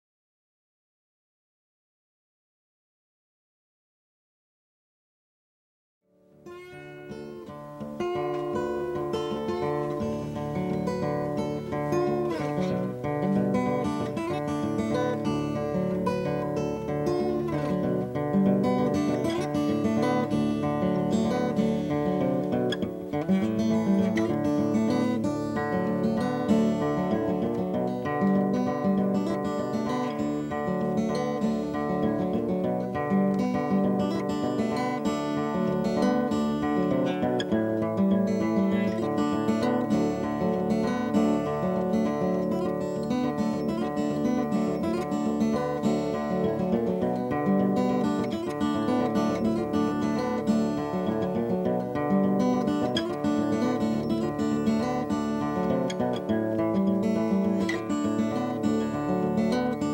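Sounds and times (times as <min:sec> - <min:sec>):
fingerpicked acoustic guitar: 0:06.1 - 0:59.9.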